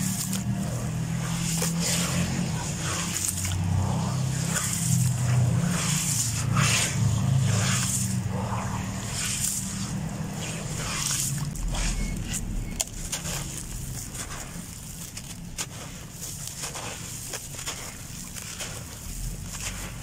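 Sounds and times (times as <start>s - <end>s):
hands squishing wet sand: 0.0s - 20.0s
steady low hum: 0.0s - 20.0s
wet sand splashing into water: 0.0s - 20.0s.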